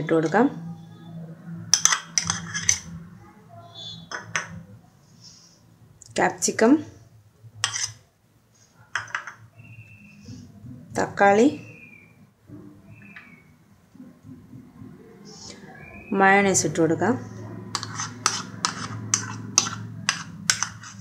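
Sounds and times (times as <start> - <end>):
kitchen bowls knocking and clinking: 1.7 - 3.0, 4.1 - 4.6, 8.9 - 9.5, 17.6 - 21.0.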